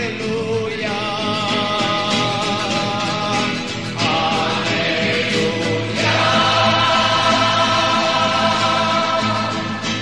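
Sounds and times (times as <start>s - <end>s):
choir singing: 4.0s - 10.0s.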